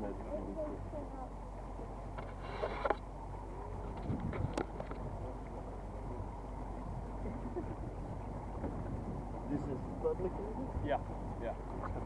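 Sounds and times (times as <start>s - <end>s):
small boat motor running: 0.0s - 12.0s
water washing along hull: 0.0s - 12.0s.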